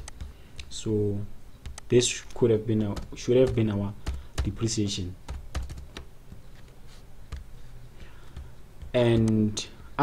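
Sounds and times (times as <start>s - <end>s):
computer keyboard key clicks: 0.0s - 0.7s, 1.6s - 2.4s.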